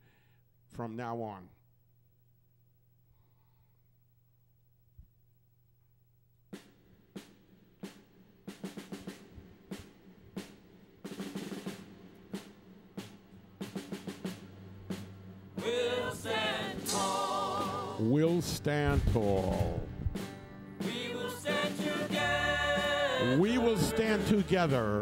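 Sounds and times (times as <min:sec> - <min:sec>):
drum hits: 0:07.2 - 0:24.8
pitched melody line: 0:21.0 - 0:25.0.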